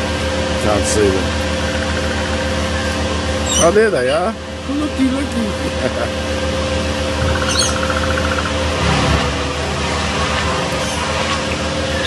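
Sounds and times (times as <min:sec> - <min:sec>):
background hum and hiss: 0:00.0 - 0:12.0
short high bird chirp: 0:07.4 - 0:08.1.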